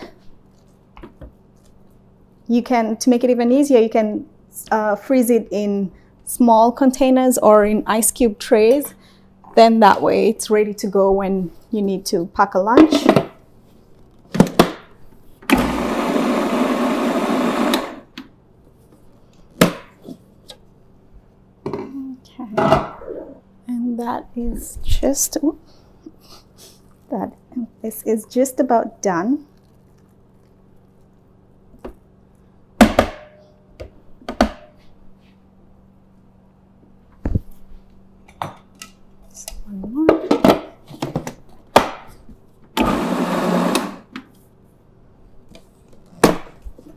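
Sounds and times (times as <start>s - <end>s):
food processor running: 15.5s - 18.1s, 42.8s - 44.1s.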